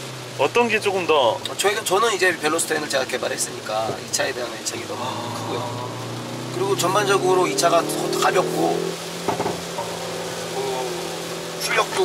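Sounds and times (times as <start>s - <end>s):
car engine steady note: 0.0s - 12.0s
tyres hissing on wet road: 0.0s - 12.0s.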